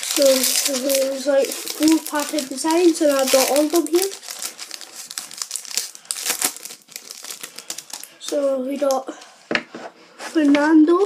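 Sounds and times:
foil wrapper tearing and crinkling: 0.0s - 8.9s.

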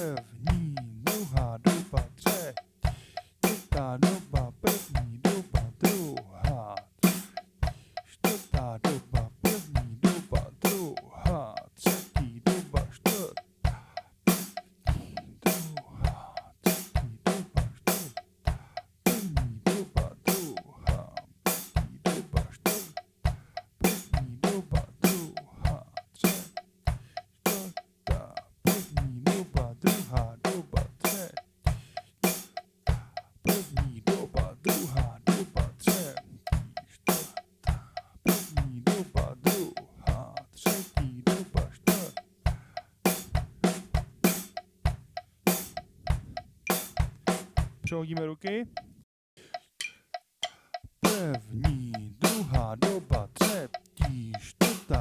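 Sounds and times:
snare and tom strokes: 0.0s - 6.2s, 7.0s - 11.0s, 26.2s - 39.9s, 40.6s - 49.0s, 49.8s - 55.0s
drum kit groove: 0.0s - 55.0s.

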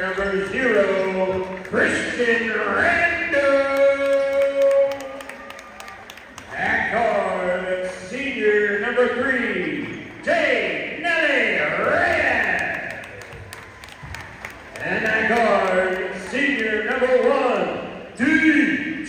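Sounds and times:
announcer's amplified voice echoing: 0.0s - 13.6s, 14.6s - 19.0s.

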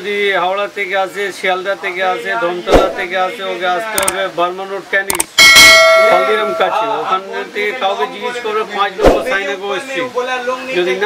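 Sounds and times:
mouse clicks: 4.0s - 4.2s, 5.1s - 5.3s
bright bell ding: 5.4s - 7.1s.

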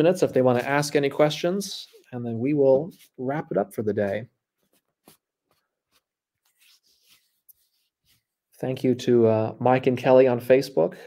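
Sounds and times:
soft rustle: 3.9s - 8.6s.

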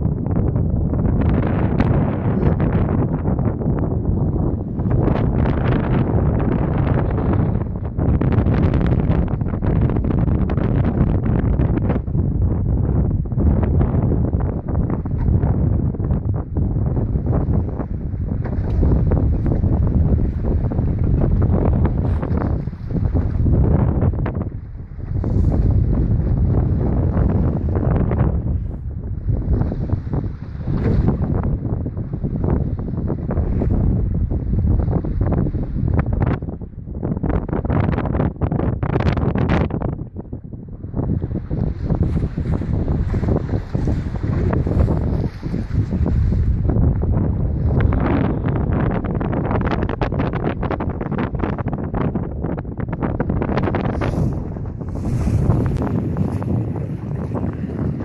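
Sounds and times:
strong wind buffeting microphone: 0.0s - 58.0s.

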